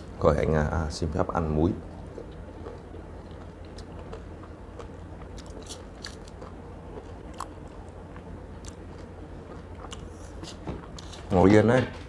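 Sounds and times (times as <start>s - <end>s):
person chewing orange: 1.9s - 11.3s.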